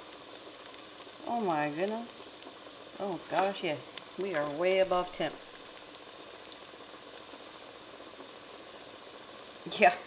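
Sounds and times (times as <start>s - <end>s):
chicken sizzling in pan: 0.0s - 10.0s.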